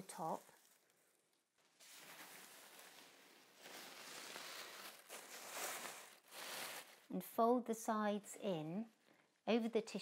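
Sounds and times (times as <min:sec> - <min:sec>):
tissue paper rustling and crinkling: 0:00.0 - 0:07.1.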